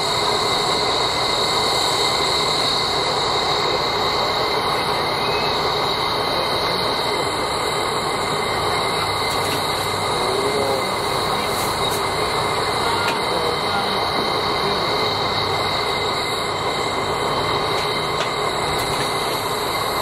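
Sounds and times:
steam hissing with whistling edge: 0.0 - 20.0.

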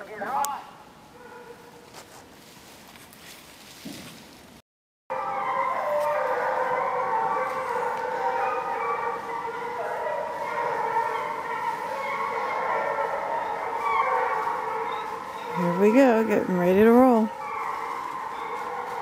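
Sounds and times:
hounds baying: 5.1 - 19.0.

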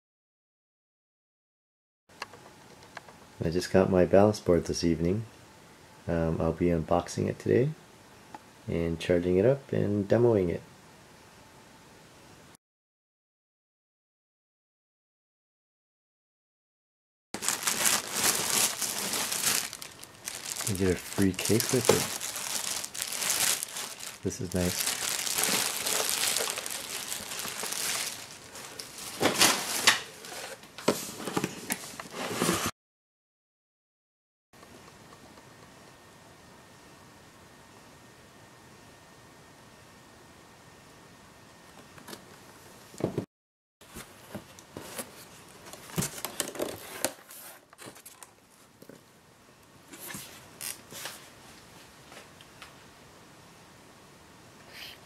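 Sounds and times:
plastic wrapping crinkling: 17.4 - 30.6
scrapes against styrofoam packing: 17.4 - 30.6.

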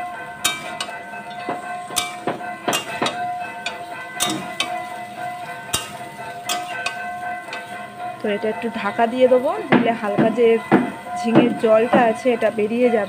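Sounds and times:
metal spatula scraping a pan: 0.4 - 7.8.

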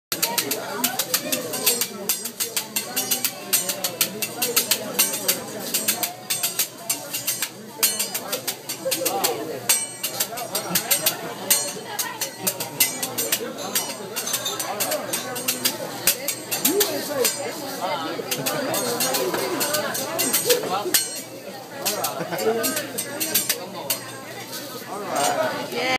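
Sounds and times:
spatula clacking on metal griddle: 0.1 - 24.5
restaurant chatter: 0.1 - 25.9.

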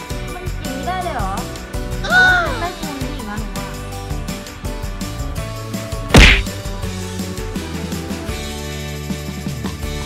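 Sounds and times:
background music: 0.0 - 10.0
whack sound effect: 6.2 - 6.6.

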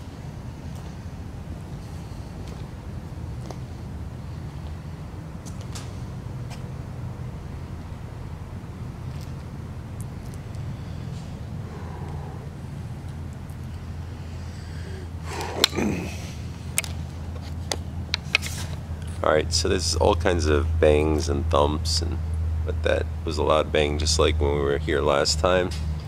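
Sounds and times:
distant road traffic rumble: 0.0 - 26.0.

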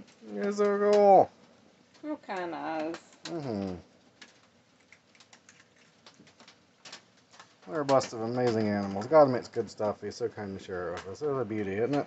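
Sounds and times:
raccoon crunching dry kibble: 4.0 - 9.4.

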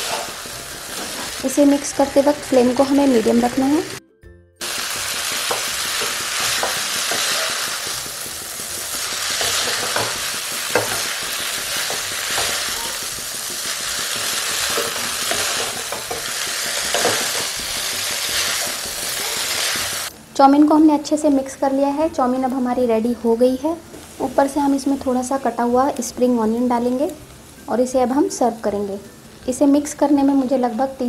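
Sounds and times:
spatula clicking and scraping pan: 0.0 - 1.4, 5.2 - 20.0
noodles sizzling in a wok: 0.0 - 4.0, 4.6 - 20.2.

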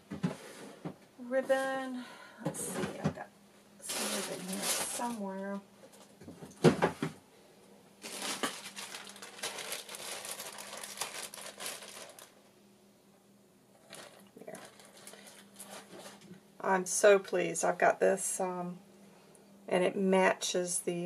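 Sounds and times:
crinkling and rustling: 3.8 - 7.2, 8.0 - 12.4, 13.8 - 16.4.

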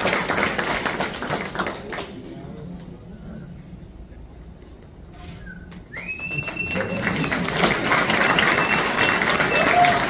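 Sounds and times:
audience applauding and cheering: 0.0 - 2.0, 5.8 - 10.0.

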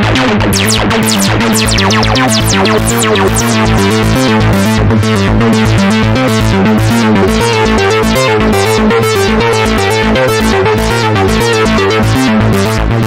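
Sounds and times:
synth playing fast short notes: 0.6 - 4.8
steady low synth pulses: 0.6 - 7.9.

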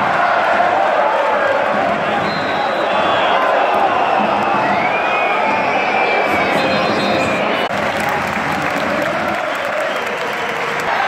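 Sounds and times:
crowd voices din: 0.0 - 11.0
crowd clapping: 7.5 - 11.0.

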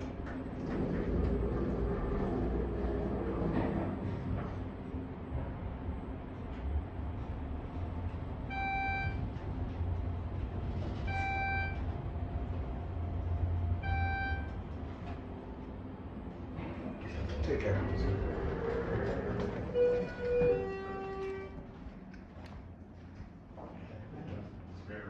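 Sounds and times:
elevator ride rumble: 0.0 - 25.0.

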